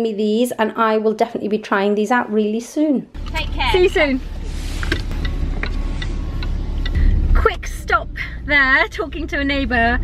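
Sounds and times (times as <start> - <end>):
car cabin rumble: 3.2 - 10.0
light regular ticking: 4.8 - 7.4.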